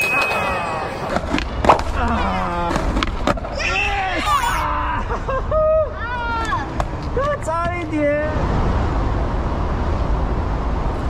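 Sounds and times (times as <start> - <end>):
voices: 0.0 - 1.2.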